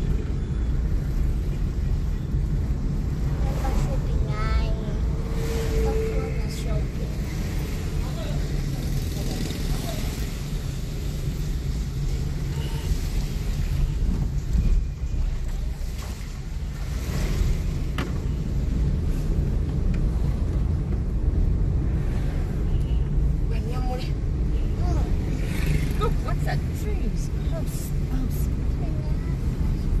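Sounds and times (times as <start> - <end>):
car engine and road rumble: 0.0 - 30.0.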